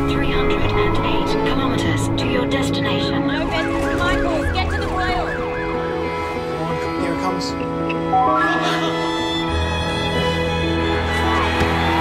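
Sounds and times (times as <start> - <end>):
background music: 0.0 - 12.0
ambulance siren yelping: 0.4 - 6.6.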